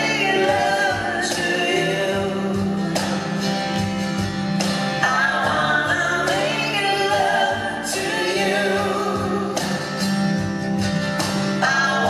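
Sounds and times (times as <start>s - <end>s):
voices singing in harmony: 0.0s - 3.4s, 4.9s - 10.0s, 11.5s - 12.0s.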